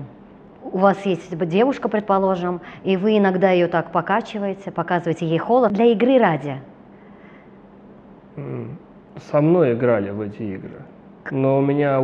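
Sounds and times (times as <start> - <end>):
man humming mm: 8.4 - 8.8.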